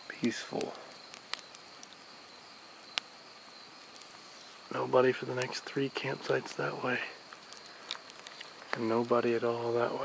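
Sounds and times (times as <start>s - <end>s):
campfire crackle: 0.0s - 10.0s
insects singing: 0.0s - 10.0s.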